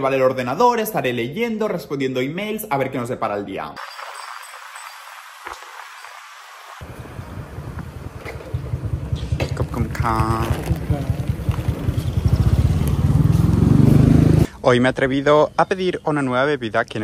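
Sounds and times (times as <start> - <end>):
motorcycle engine running: 6.9 - 14.5.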